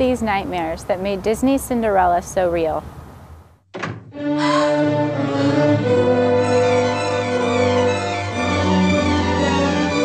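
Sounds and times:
thud: 3.7 - 4.2
orchestral music with string chords: 4.1 - 10.0.

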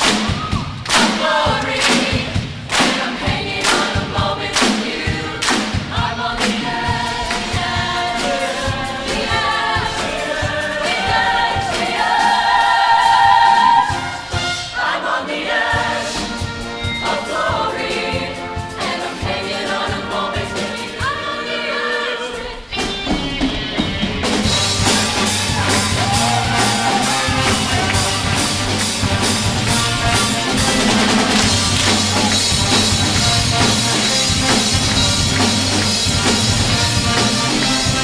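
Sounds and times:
choir singing in harmony: 0.1 - 23.5, 24.4 - 38.0
music beat: 24.6 - 38.0.

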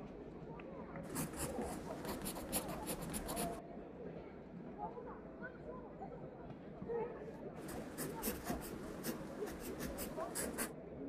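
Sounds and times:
pencil writing on paper: 1.1 - 3.6, 7.6 - 10.7.

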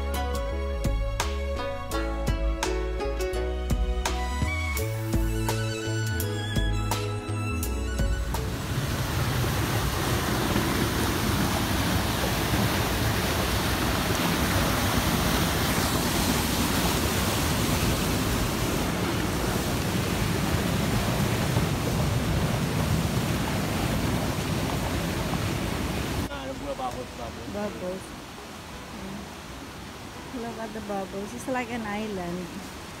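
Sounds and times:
river rushing over rapids: 8.4 - 33.0.

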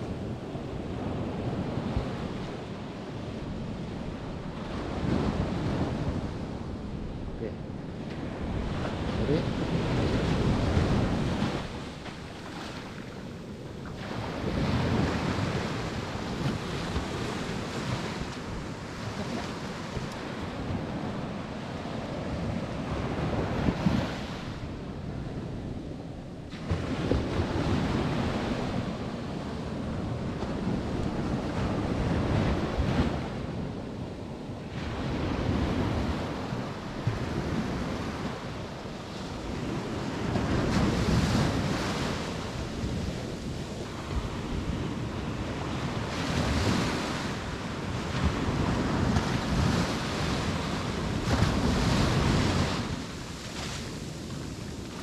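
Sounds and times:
surf breaking on beach: 8.1 - 24.3, 39.3 - 55.0.

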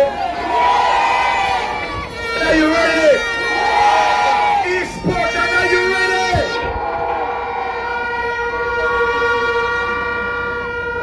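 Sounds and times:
crowd noise: 0.0 - 11.0
horn long steady note: 0.0 - 11.0.

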